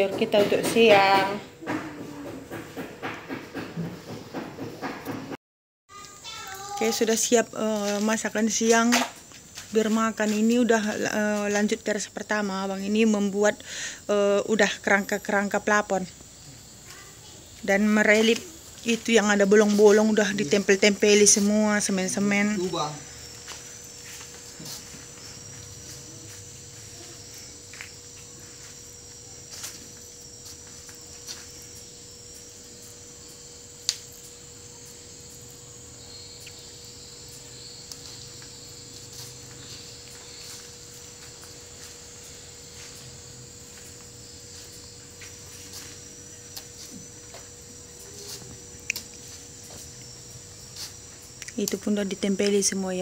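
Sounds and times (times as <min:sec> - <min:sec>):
insects chirring: 0:00.0 - 0:05.3, 0:05.9 - 0:53.0
faint steady hum: 0:05.9 - 0:53.0.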